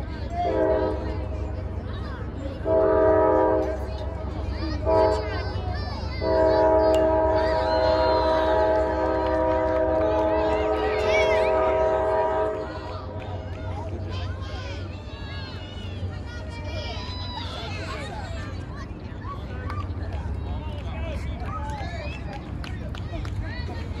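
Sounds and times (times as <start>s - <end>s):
train horn blasts: 0.4s - 1.4s, 2.6s - 5.6s, 6.2s - 13.2s.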